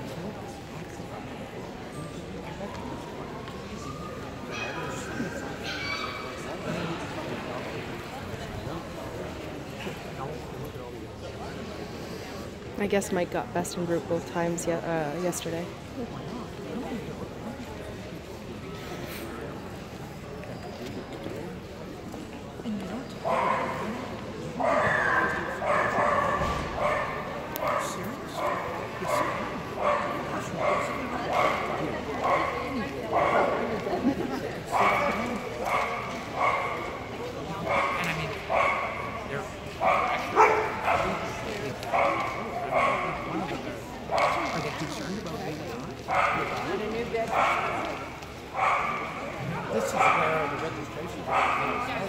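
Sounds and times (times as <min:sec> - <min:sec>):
background chatter: 0:00.0 - 0:52.0
dog barking in echoing hall: 0:04.4 - 0:06.6, 0:23.2 - 0:33.8, 0:34.7 - 0:44.6, 0:46.0 - 0:52.0
dog barking: 0:24.6 - 0:32.6, 0:39.8 - 0:41.3, 0:41.9 - 0:43.3, 0:47.3 - 0:47.8, 0:48.6 - 0:49.2, 0:49.8 - 0:50.4, 0:51.3 - 0:51.9.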